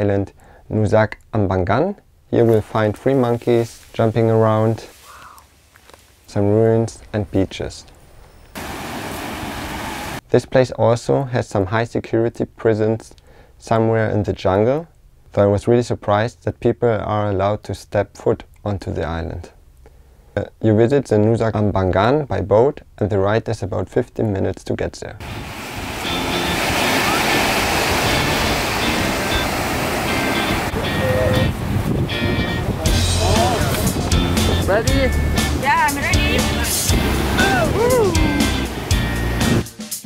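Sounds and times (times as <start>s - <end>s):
surf on rocky shore: 8.6s - 10.2s, 25.2s - 39.7s.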